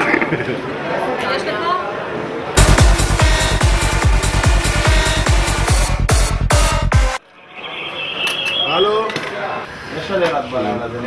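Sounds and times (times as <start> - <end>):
room noise: 2.6 - 10.1.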